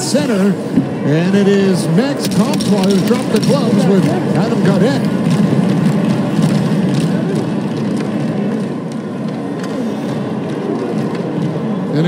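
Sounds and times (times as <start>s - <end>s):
arena crowd din: 0.0s - 12.0s.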